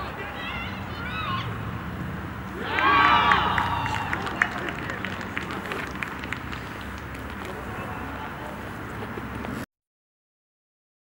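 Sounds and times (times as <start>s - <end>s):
open-air background noise: 0.0s - 9.7s
football players calling: 2.4s - 6.0s.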